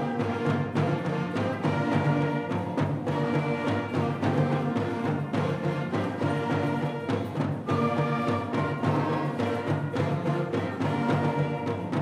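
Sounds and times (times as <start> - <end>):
concert band playing: 0.0 - 12.0.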